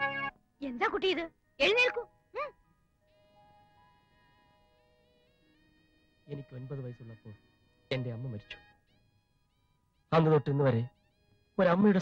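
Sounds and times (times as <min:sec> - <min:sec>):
faint sustained background music: 0:00.0 - 0:12.0.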